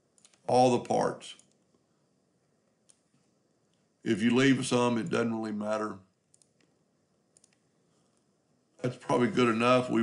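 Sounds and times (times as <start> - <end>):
faint computer clicks: 0.1 - 1.8, 2.7 - 3.9, 6.1 - 8.3.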